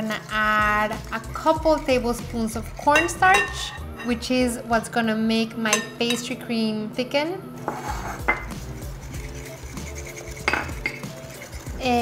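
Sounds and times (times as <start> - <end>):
whisk scraping glass bowl: 0.0 - 4.3, 7.7 - 12.0.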